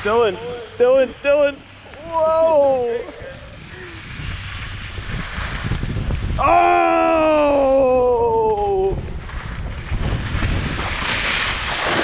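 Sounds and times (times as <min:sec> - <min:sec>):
skis sliding over snow: 0:00.0 - 0:12.0
wind on microphone: 0:02.0 - 0:12.0.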